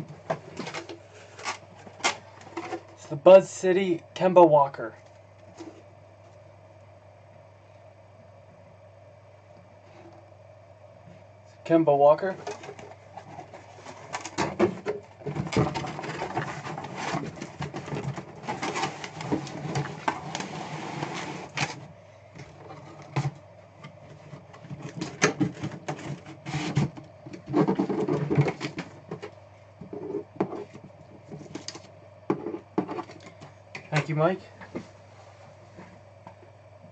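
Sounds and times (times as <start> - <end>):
cardboard flaps scraping and folding: 12.4 - 21.8, 24.2 - 29.3.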